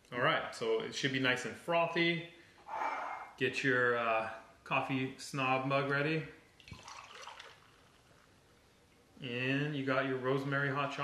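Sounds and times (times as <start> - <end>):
liquid trickling into a mug: 6.6 - 8.3.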